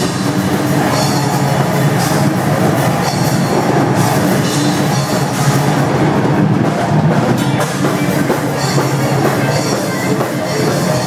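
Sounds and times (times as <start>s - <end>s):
distorted electric guitars: 0.0s - 11.0s
drum kit: 0.0s - 11.0s.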